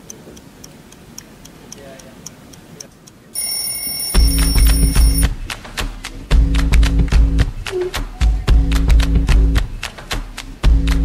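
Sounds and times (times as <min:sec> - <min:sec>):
clock ticking: 0:00.0 - 0:09.6
high steady ringing tone: 0:03.4 - 0:05.2.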